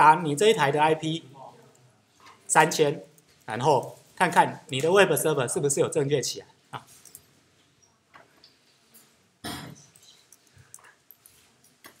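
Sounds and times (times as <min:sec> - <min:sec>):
classroom room noise: 0:00.0 - 0:12.0.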